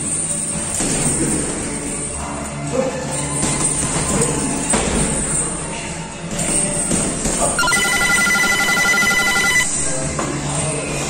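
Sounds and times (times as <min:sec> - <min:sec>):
background music: 0:00.0 - 0:11.0
electronic bell trilling: 0:07.6 - 0:09.8.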